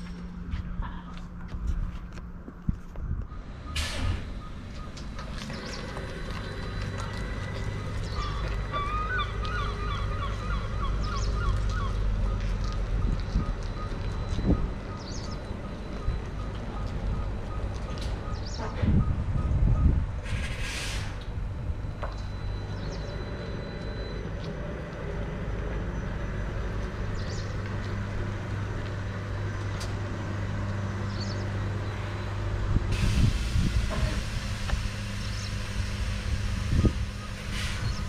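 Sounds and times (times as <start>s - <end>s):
electric bus low hum: 0.0s - 38.0s
high warning beep: 13.4s - 20.0s, 21.9s - 24.5s
air hiss: 20.3s - 21.2s, 32.9s - 38.0s.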